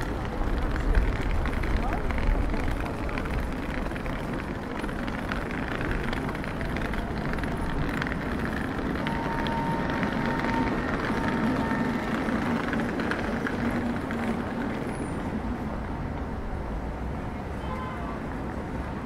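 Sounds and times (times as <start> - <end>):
city street traffic: 0.0 - 19.0.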